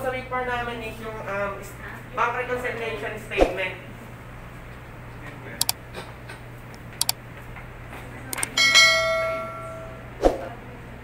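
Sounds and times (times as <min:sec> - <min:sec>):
bell ding: 0:08.6 - 0:10.0.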